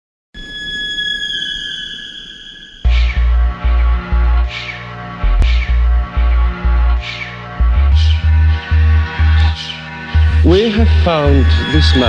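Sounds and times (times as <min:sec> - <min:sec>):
high squealing tone: 0:00.4 - 0:12.0
low rumble: 0:02.9 - 0:12.0.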